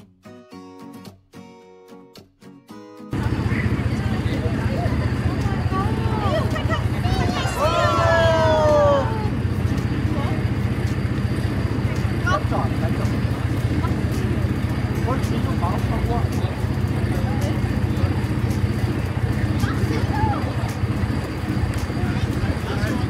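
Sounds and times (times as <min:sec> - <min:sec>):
faint scattered voices: 0:03.2 - 0:23.0
steady low rumble: 0:03.2 - 0:23.0
high falling cries: 0:05.8 - 0:09.5.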